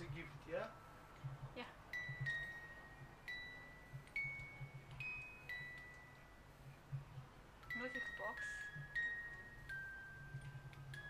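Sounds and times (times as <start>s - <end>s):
small metal chimes ringing: 1.9s - 6.5s, 7.6s - 11.0s.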